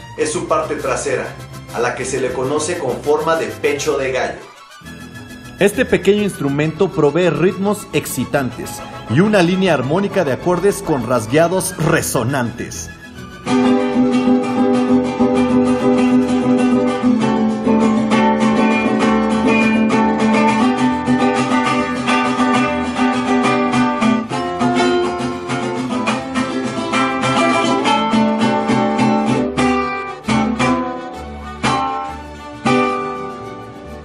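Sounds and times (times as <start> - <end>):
strummed guitar chords: 0.0 - 34.0.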